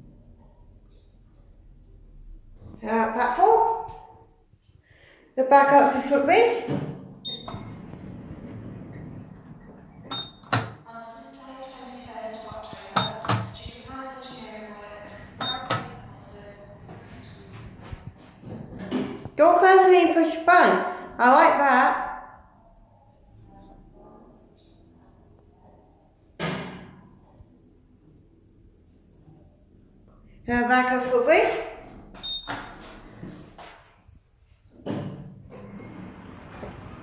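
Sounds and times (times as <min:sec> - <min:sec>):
short high beep: 0:15.4 - 0:15.7.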